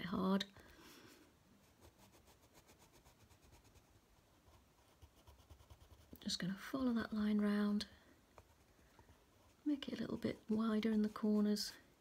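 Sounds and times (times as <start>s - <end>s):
coloured pencil scratching on paper: 1.6s - 6.2s, 8.4s - 11.9s.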